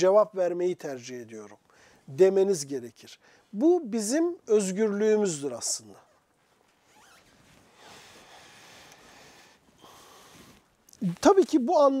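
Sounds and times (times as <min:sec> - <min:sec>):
faint rustle: 0:05.9 - 0:11.8.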